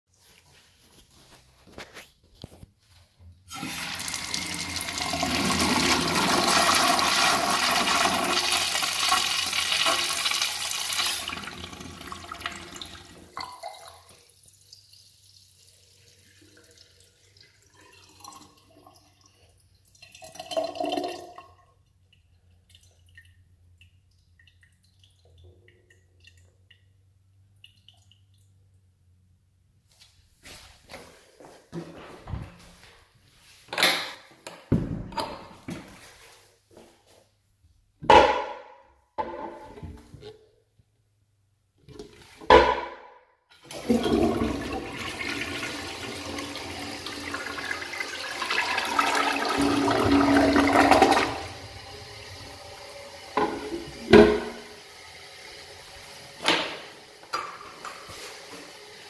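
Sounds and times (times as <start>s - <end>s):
urinal flushing: 3.5s - 21.8s, 43.5s - 59.0s.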